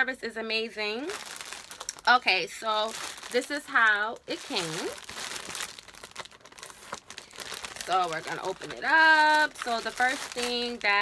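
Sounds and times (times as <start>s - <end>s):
plastic bag crinkling: 0.8s - 11.0s.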